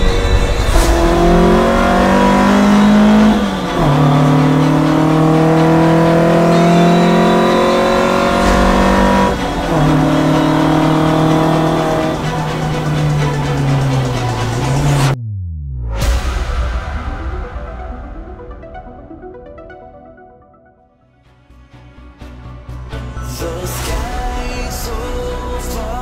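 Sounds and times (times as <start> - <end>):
car engine accelerating through gears: 0.0 - 15.7.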